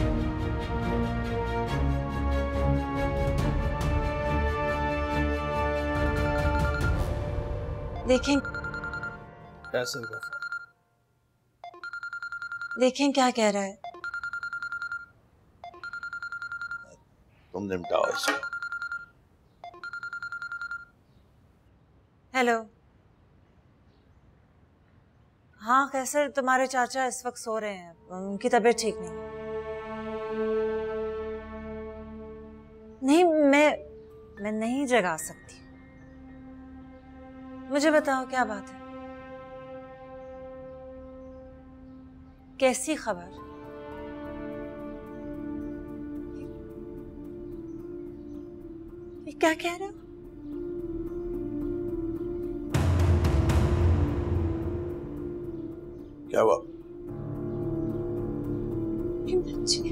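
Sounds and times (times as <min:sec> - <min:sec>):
telephone ringing electronic trill: 0:06.4 - 0:07.0, 0:08.0 - 0:10.8, 0:11.6 - 0:13.0, 0:13.8 - 0:17.0, 0:17.9 - 0:21.0.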